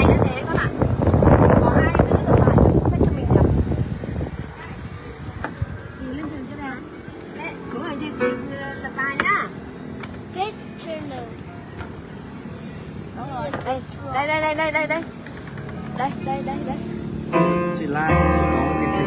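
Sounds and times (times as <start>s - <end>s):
people talking: 0.0s - 9.6s, 10.3s - 11.5s, 13.2s - 15.2s, 15.8s - 19.0s
digital piano playing chords: 8.0s - 9.6s, 15.9s - 19.0s.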